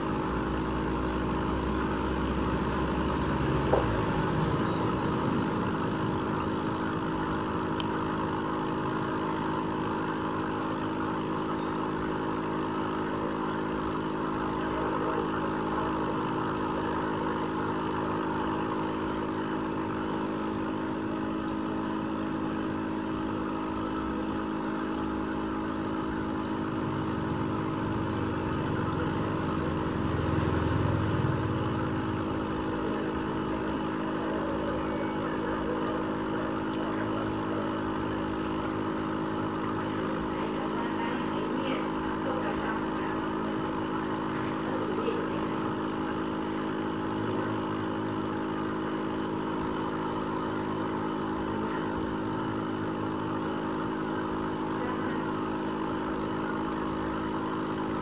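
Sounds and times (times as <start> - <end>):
aquarium pump humming: 0.0 - 58.0.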